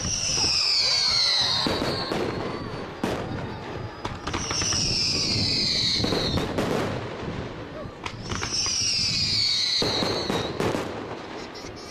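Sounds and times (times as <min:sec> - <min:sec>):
firework bangs: 0:00.0 - 0:11.9
firework crackling: 0:00.0 - 0:11.9
whistling rockets: 0:00.0 - 0:11.9.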